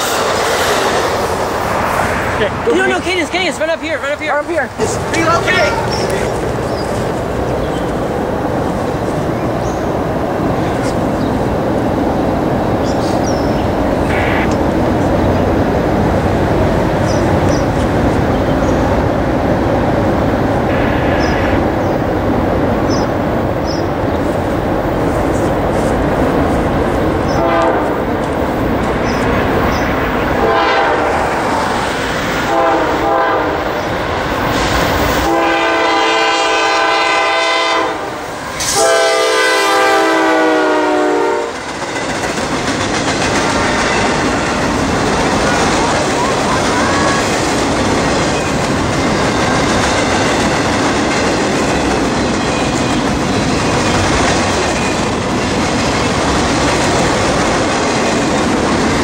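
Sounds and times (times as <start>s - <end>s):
freight cars rumbling: 0.0s - 40.6s, 41.4s - 59.0s
locomotive air horn blasts: 27.3s - 28.0s, 30.4s - 31.2s, 32.5s - 33.7s, 35.2s - 41.6s.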